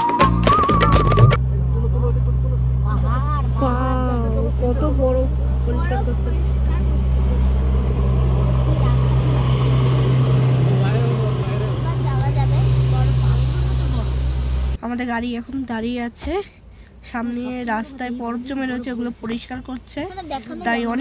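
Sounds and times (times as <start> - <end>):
vehicle engine and road rumble: 1.2 - 16.3
faint voices: 1.4 - 14.8.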